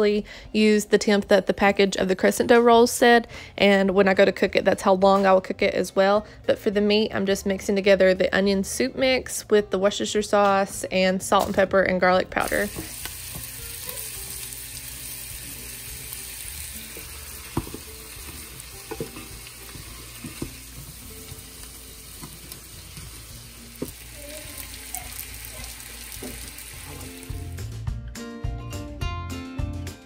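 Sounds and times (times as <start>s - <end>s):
meat and onions sizzling: 12.4s - 27.7s
chopper tapping and scraping pan: 16.9s - 21.6s.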